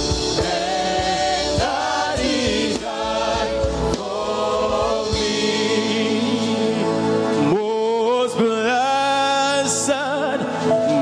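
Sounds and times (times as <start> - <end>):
man singing gospel lead: 0.0 - 11.0
women backing singers: 0.3 - 7.0.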